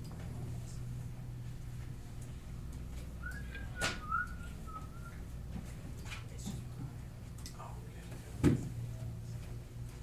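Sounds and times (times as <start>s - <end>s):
person whistling: 3.2s - 5.2s.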